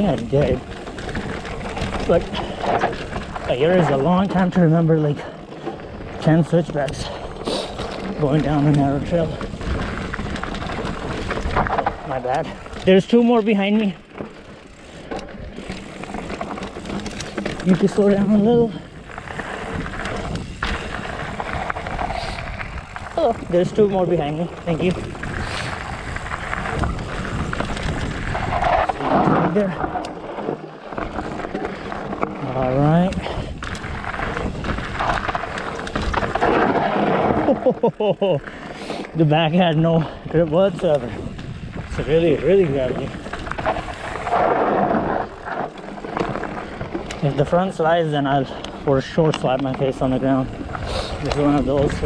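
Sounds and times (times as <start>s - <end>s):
bike rattling over rocks: 0.0s - 52.0s
bike tyres rushing over dirt: 0.0s - 52.0s
wind on microphone: 24.5s - 29.9s, 41.0s - 45.5s.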